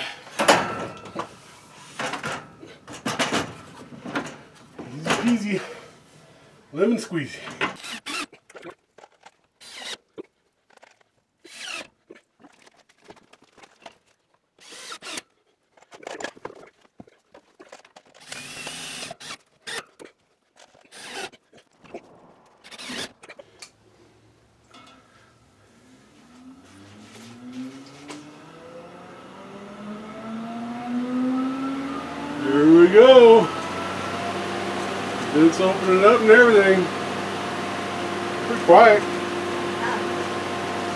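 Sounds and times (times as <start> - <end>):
power drill bursts: 7.6 - 8.4, 9.6 - 10.0, 11.4 - 12.0, 14.6 - 15.2, 18.2 - 19.9, 20.8 - 21.4, 22.6 - 23.2
fan motor humming: 26.0 - 40.9.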